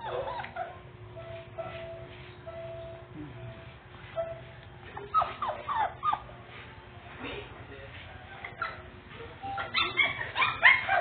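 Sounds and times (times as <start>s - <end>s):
puppies whining: 0.0s - 3.0s, 4.1s - 6.6s, 8.4s - 11.0s.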